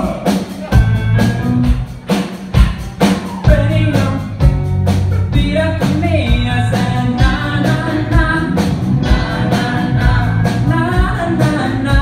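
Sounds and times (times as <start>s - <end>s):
live pop band playing: 0.0s - 12.0s
person singing: 3.2s - 4.5s, 5.3s - 12.0s.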